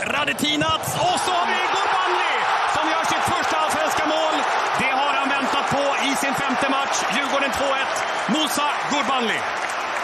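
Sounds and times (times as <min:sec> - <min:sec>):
man's excited voice: 0:00.0 - 0:09.4
stadium crowd cheering: 0:00.0 - 0:10.0.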